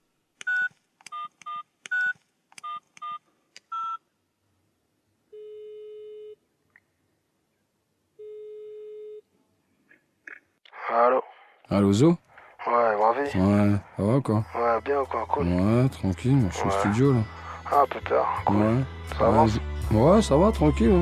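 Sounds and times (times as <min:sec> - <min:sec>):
phone ringback tone: 0:05.4 - 0:06.4, 0:08.2 - 0:09.2.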